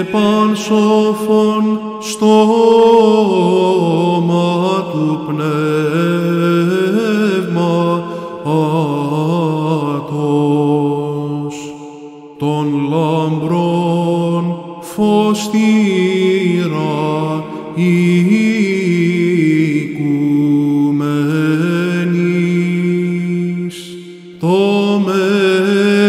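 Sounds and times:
man chanting a hymn: 0:00.0 - 0:26.0.

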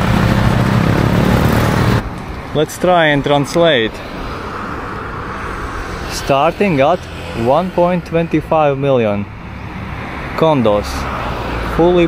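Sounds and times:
vehicle passing on road: 0:00.0 - 0:12.0.

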